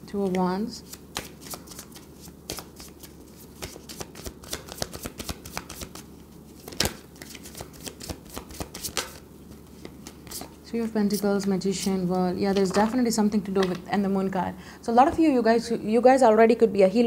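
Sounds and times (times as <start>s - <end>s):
cards being shuffled: 0.2s - 10.6s.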